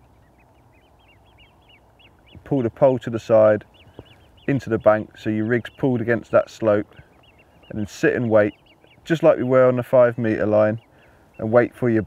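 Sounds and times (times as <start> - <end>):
bird chirping rapidly: 0.0 - 12.0.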